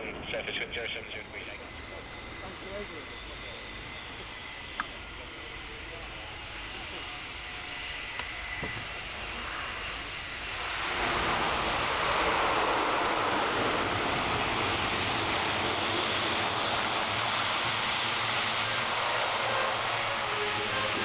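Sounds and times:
turboprop aircraft landing rollout: 0.0s - 21.0s.

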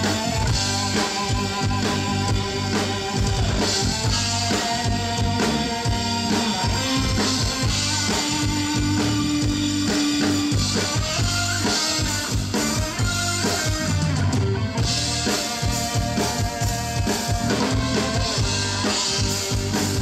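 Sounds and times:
drum kit beat: 0.0s - 20.0s
keyboards: 0.0s - 20.0s.

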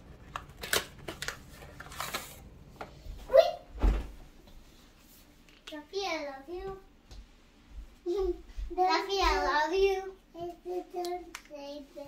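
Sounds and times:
hands handling plastic tube: 0.0s - 3.0s
child's high-pitched voice: 3.2s - 3.7s, 5.7s - 6.9s, 8.1s - 12.0s.

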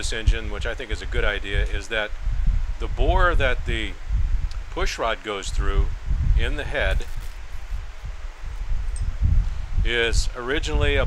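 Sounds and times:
hiss with low rumble: 0.0s - 11.0s.

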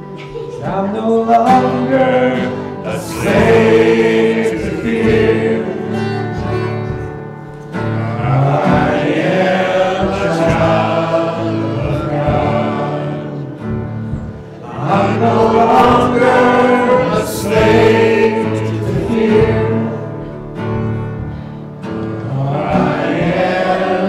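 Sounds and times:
man singing: 0.0s - 20.6s, 22.1s - 24.0s
acoustic guitar: 0.0s - 24.0s
congregation singing: 0.0s - 24.0s
keyboard: 0.0s - 24.0s.

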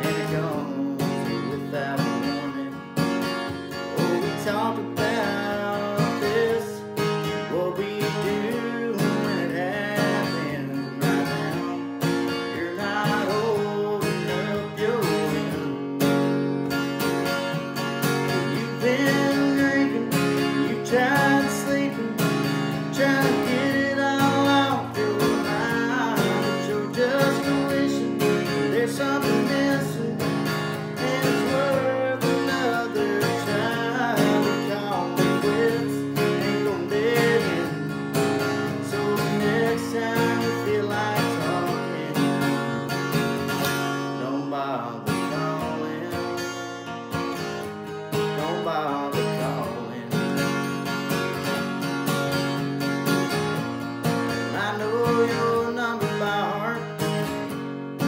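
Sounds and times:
acoustic guitar strumming: 0.0s - 58.0s
man singing country song: 0.0s - 58.0s.

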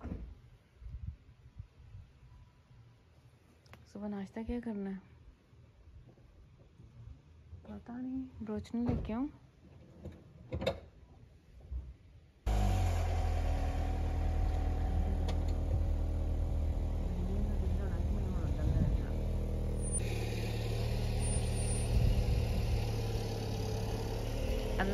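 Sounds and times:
car engine running: 12.5s - 24.9s.

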